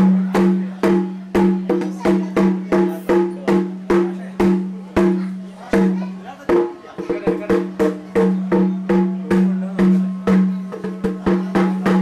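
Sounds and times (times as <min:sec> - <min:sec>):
pitched drum strokes: 0:00.0 - 0:12.0.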